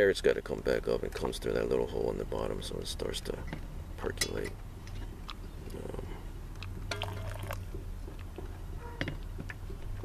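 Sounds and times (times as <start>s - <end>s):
low steady hum: 0.0s - 10.0s
soft bubbling: 6.9s - 7.7s
hot water pouring onto coffee: 7.0s - 7.6s.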